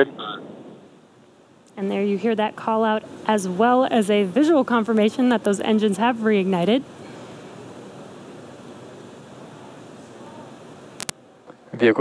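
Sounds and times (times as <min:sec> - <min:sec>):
steady broadcast hiss: 0:00.0 - 0:12.0.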